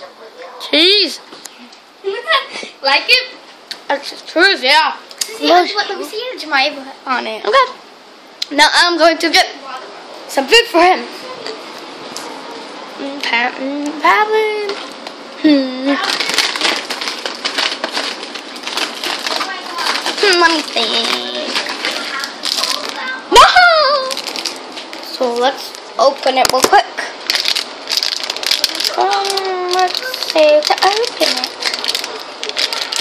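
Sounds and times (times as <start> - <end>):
plastic packaging crinkling: 15.9 - 23.2, 23.9 - 33.0.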